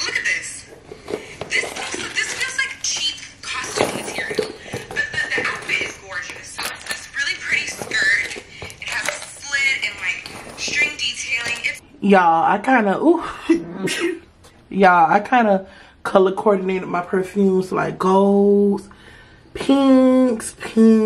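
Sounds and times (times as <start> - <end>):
items rustling in handbag: 0.0 - 11.8
woman's voice: 0.0 - 14.0, 14.7 - 18.9, 19.6 - 21.0.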